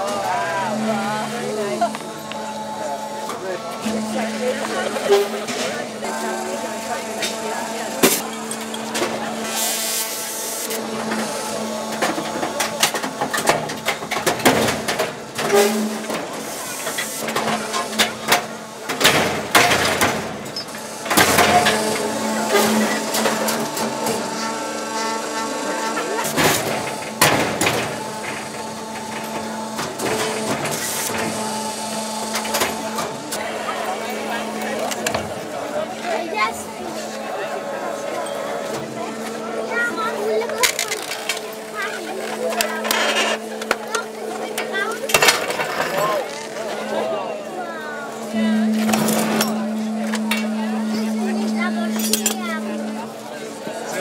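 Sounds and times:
machine hum: 0.0s - 54.0s.

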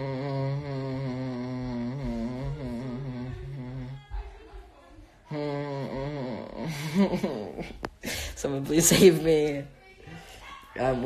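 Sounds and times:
young man humming: 0.0s - 4.1s, 5.3s - 7.6s.

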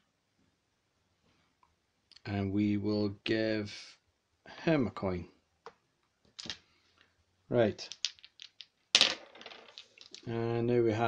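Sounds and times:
dice rolling on wooden table: 6.3s - 6.7s, 7.8s - 10.4s
dice clicking in a hand: 7.8s - 10.3s.

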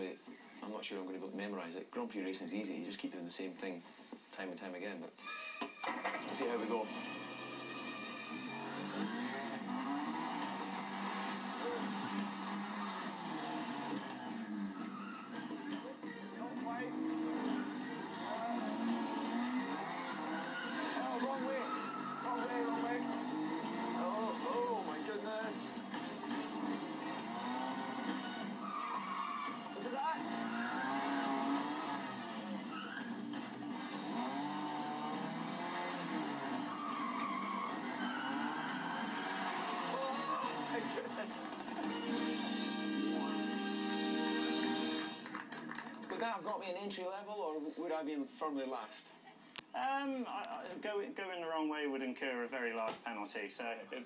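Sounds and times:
tyres squealing: 5.2s - 42.2s
car engine revving: 6.5s - 45.4s.

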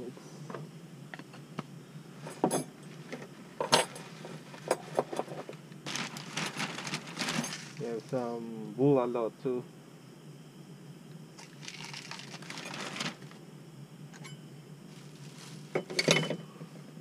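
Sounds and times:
small items clinking and knocking: 3.6s - 7.9s, 11.4s - 13.3s, 15.7s - 16.4s
plastic bag crinkling: 5.8s - 7.9s, 11.4s - 13.4s.

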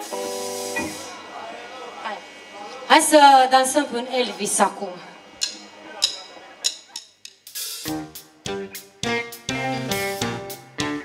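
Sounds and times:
band playing: 0.0s - 2.5s, 5.2s - 11.0s
drumsticks clicking count-in: 5.4s - 7.4s.

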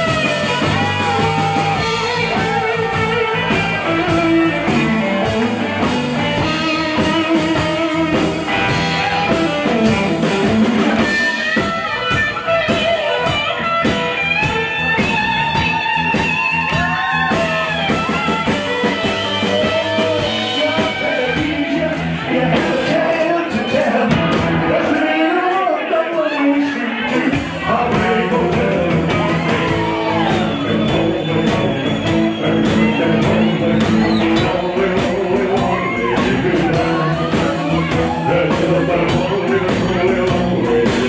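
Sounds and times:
electric guitar lead lines: 0.0s - 24.8s
rock band playing: 0.0s - 41.0s.

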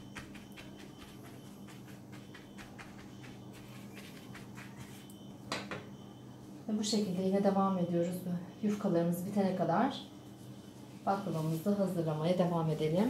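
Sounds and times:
pastry brush dabbing on phyllo: 0.0s - 5.1s
steady low hum: 0.0s - 13.0s.

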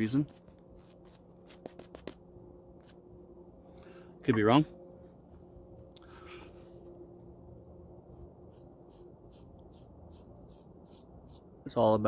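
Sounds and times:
razor scraping beard stubble: 0.3s - 2.2s, 8.1s - 11.5s.

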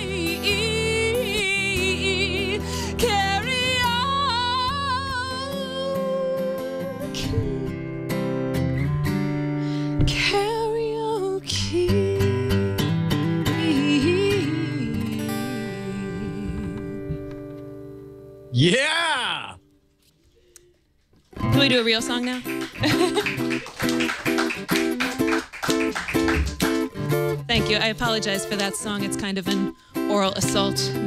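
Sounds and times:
woman singing with vibrato: 0.0s - 7.7s, 13.5s - 17.2s
strummed acoustic guitar: 0.0s - 18.6s, 21.3s - 31.0s.

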